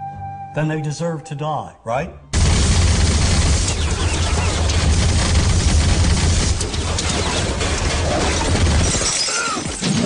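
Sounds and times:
dense noise: 2.3s - 9.0s
crash of shattering debris: 2.4s - 10.0s.

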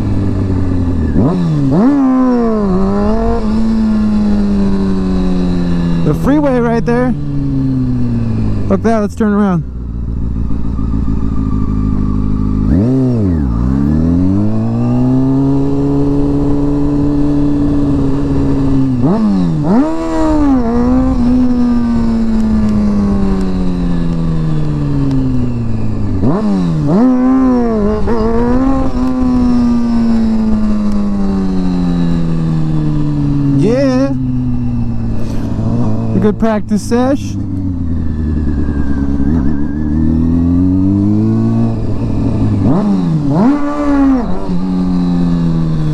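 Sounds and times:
motorcycle engine revving: 0.0s - 45.9s.

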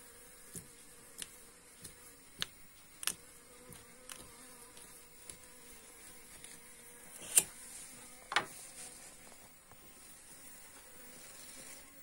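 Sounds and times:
faint insect buzz: 0.0s - 12.0s
fork raking wax cappings: 0.0s - 12.0s.

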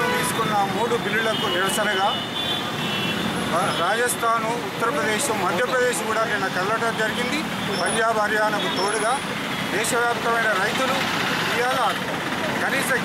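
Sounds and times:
man speaking: 0.0s - 2.2s, 3.5s - 12.0s, 12.6s - 13.0s
street traffic hum: 0.0s - 13.0s.

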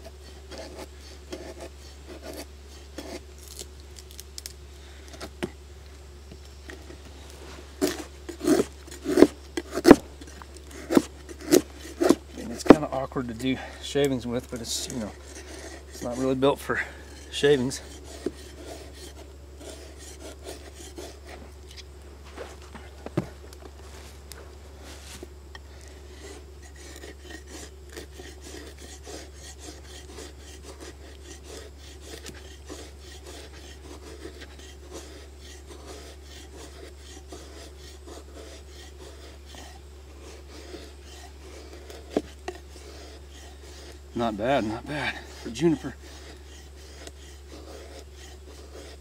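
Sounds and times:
knife scraping wood: 0.0s - 5.6s, 6.3s - 49.0s.

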